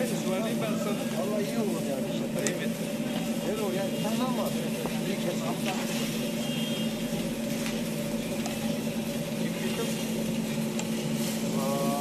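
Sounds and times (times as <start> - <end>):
gas burner hum and hiss: 0.0 - 12.0.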